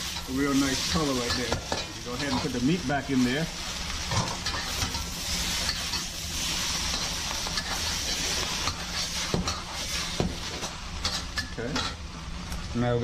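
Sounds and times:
noodles sizzling in a wok: 0.0s - 13.0s.

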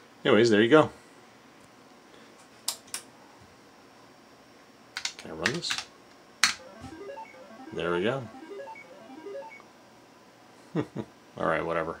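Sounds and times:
short electronic beeps: 6.6s - 9.6s.

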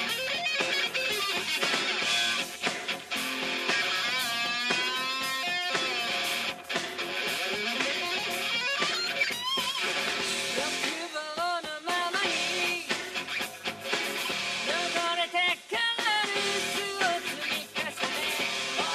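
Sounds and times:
electric guitar lead with bends: 0.0s - 10.9s, 12.2s - 15.0s
heavy metal band playing: 0.0s - 18.9s.

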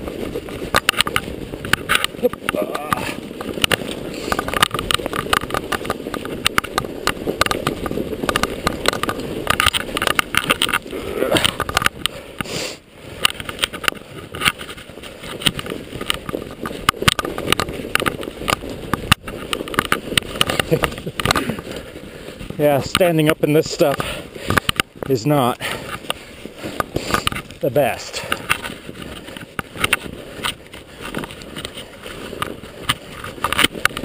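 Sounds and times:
bike clicks and knocks: 0.0s - 12.5s, 13.1s - 34.0s
bike rattling: 0.0s - 34.0s
tyres rumbling through snow: 0.0s - 34.0s.

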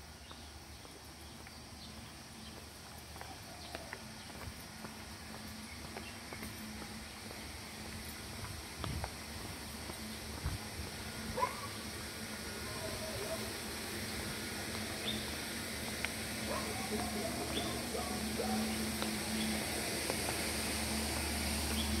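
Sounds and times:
steady background hiss: 0.0s - 22.0s
footsteps on concrete: 0.2s - 11.7s, 15.9s - 22.0s
wild birds chirping: 11.2s - 14.0s, 14.9s - 19.7s, 21.6s - 22.0s.

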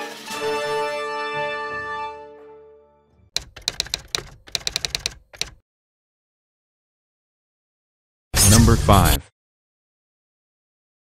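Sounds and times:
keyboard keys clicking: 3.4s - 5.6s.

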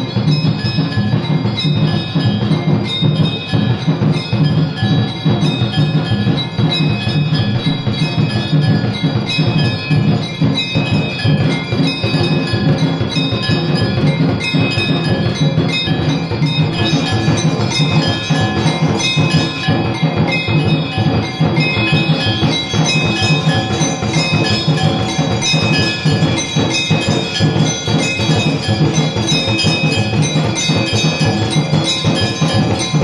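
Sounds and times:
bells ringing: 0.0s - 33.0s
drums beaten fast: 0.0s - 33.0s.

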